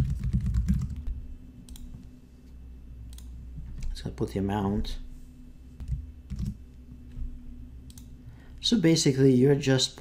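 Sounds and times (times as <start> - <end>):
computer keyboard typing: 0.0 - 1.1, 5.8 - 6.6.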